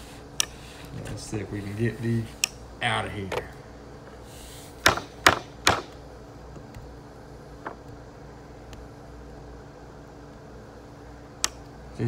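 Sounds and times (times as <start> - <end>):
steady low hum: 0.0 - 12.0
hammer striking wooden board: 4.8 - 6.0.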